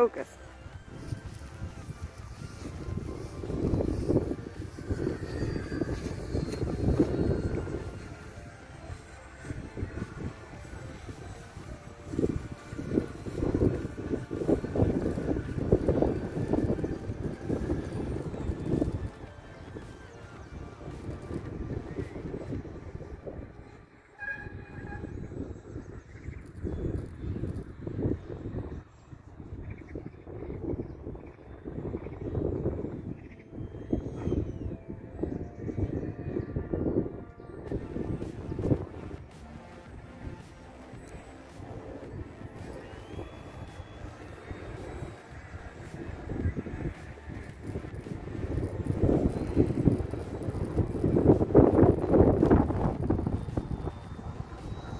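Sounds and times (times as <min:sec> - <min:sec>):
electric fan motor whining: 0:00.0 - 0:23.0
wind buffeting microphone: 0:00.0 - 0:54.9.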